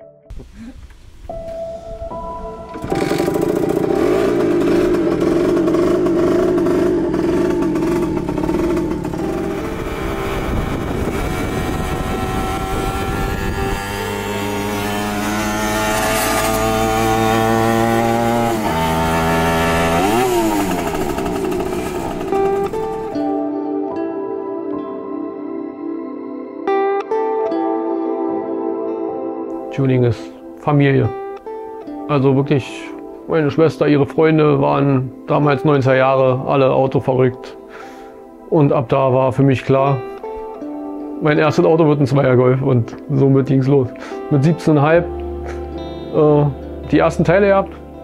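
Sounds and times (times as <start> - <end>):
scooter two-stroke engine revving: 2.7 - 23.4.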